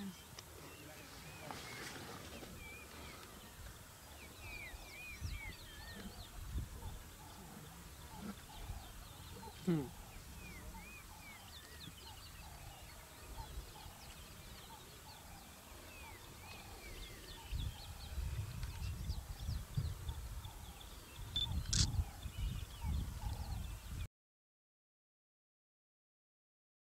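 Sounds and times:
birds chirping: 0.0 - 24.1
sharp click: 21.5 - 22.0.

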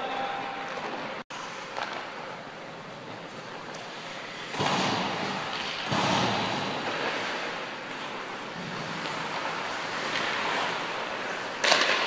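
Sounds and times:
skate blades scraping ice: 0.7 - 12.0.

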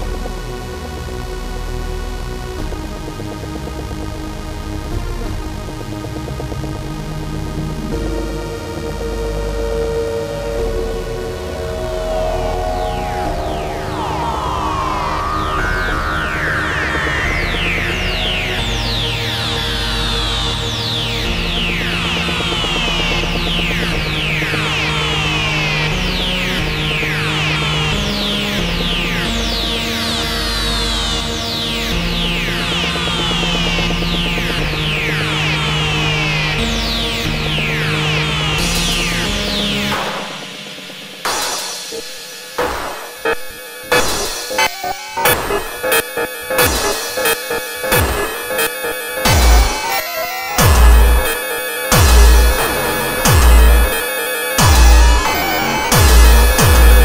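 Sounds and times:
hardcore techno synthesizer music: 0.0 - 57.0
deep sustained bass note: 10.3 - 39.8, 54.6 - 57.0
crash-like hits with falling sweeps: 34.3 - 57.0.

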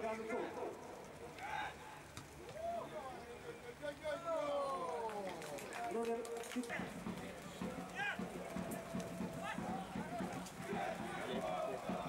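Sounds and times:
open-air background noise: 0.0 - 12.0
men shouting: 6.8 - 12.0.

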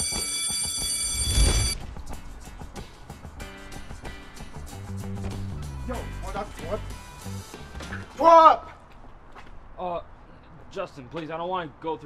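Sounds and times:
electric bell ringing: 0.0 - 1.8
background music: 0.0 - 8.6.

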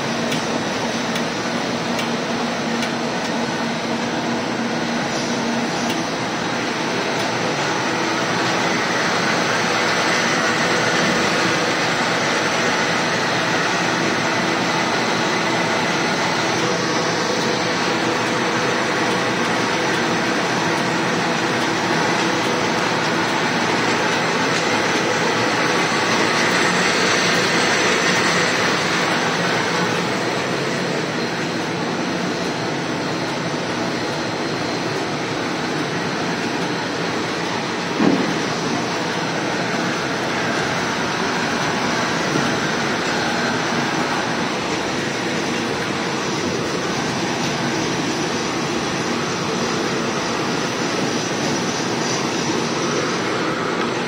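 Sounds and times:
grooving machine running: 0.0 - 54.0.

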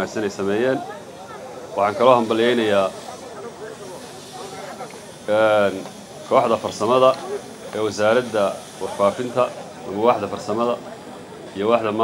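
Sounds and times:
faint voices: 0.0 - 12.0
steady hiss: 0.0 - 12.0.

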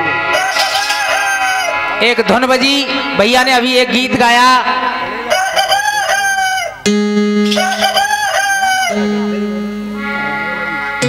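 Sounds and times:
rooster-like crowing: 0.3 - 1.9, 5.3 - 6.8, 7.5 - 9.1
held musical note: 6.8 - 11.0.

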